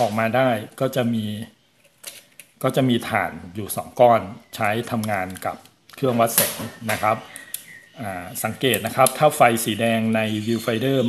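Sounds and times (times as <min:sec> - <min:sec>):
man speaking: 0:00.0 - 0:01.6, 0:02.6 - 0:07.4, 0:08.0 - 0:11.0.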